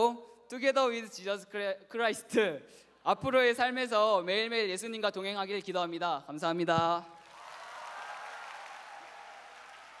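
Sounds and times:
crowd applauding: 7.2 - 10.0.

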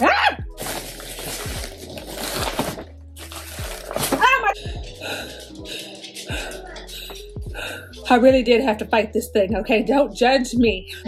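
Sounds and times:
packaging rustling and crinkling: 0.5 - 4.5
low dull thuds: 8.3 - 8.6, 10.6 - 10.9.

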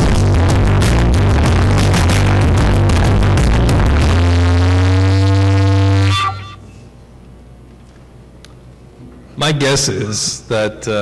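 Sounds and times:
electronic dance music: 0.0 - 6.6.

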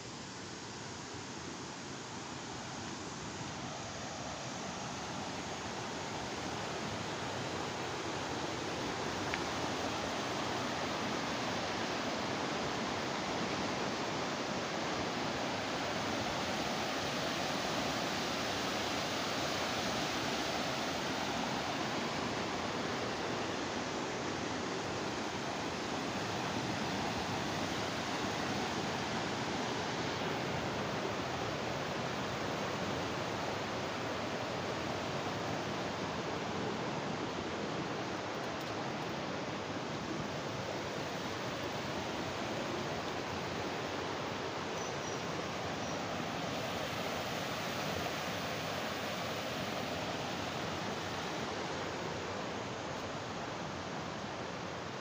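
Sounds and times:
river rushing over boulders: 0.0 - 55.0.

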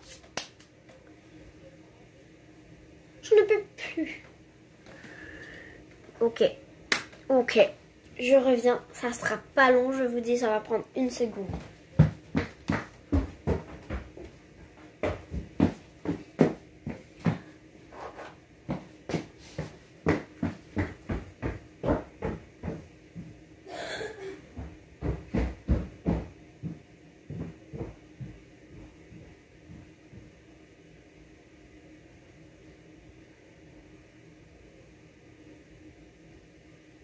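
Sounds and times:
irregular knocks and thumps: 11.4 - 14.3, 20.0 - 23.4, 24.6 - 28.9.

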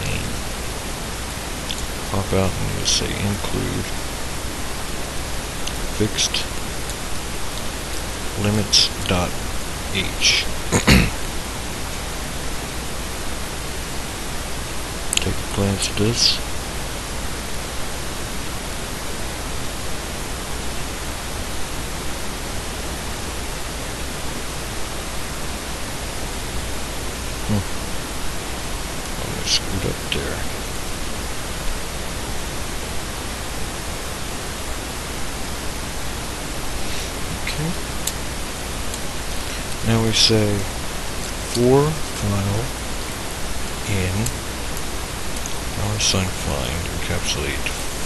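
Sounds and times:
low hum: 0.0 - 48.0
recording hiss: 0.0 - 48.0.

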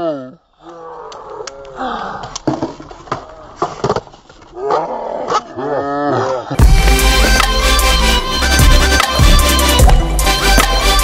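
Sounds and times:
music: 6.6 - 11.0.

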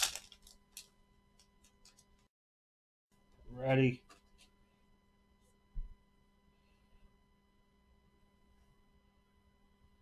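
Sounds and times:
wrapper crinkling and tearing: 0.0 - 0.9.

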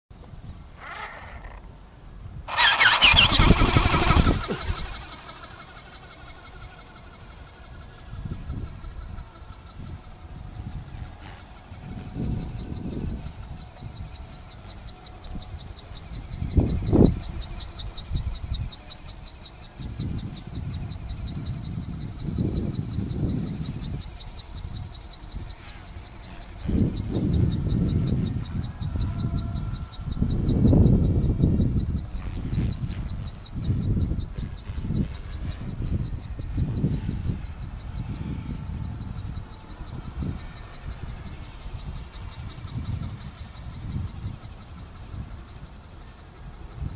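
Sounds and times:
small electric motor whine: 0.4 - 46.9
wind buffeting microphone: 1.5 - 46.9.

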